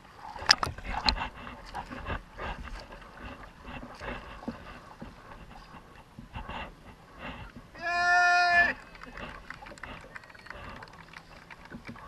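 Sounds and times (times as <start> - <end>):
water splashing and lapping: 0.0 - 12.0.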